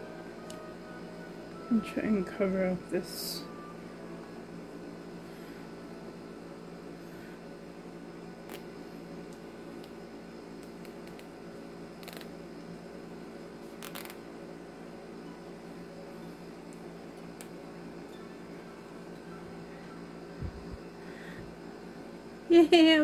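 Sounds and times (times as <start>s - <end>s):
low background hum: 0.0s - 23.0s.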